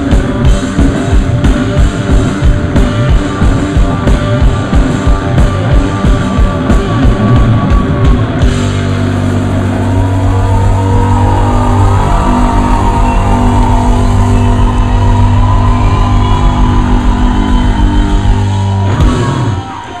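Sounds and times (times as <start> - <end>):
rock band sustained chord: 0.0 - 20.0.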